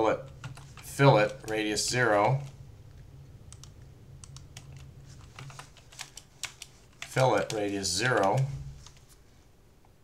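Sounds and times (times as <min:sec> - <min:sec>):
low steady hum: 0:00.0 - 0:10.0
keyboard keys clicking: 0:00.2 - 0:02.6, 0:03.5 - 0:09.0.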